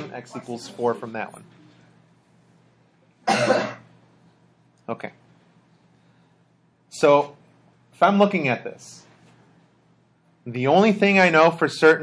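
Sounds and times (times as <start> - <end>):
person coughing: 3.2 - 3.9.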